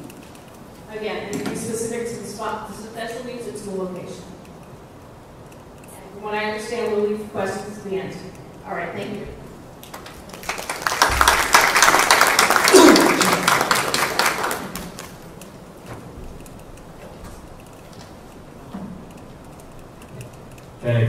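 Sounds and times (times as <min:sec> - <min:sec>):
audience applauding: 0:09.8 - 0:15.4.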